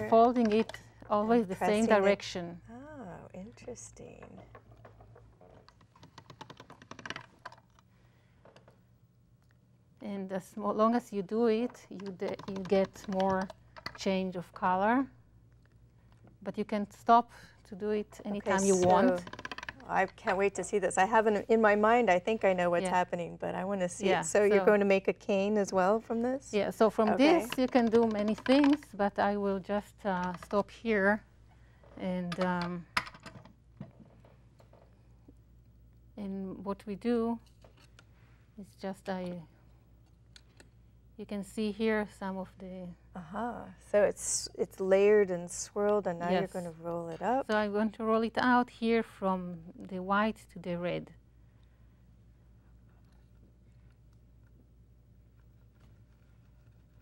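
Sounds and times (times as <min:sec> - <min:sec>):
hands clicking and tapping clay: 0:11.9 - 0:14.0.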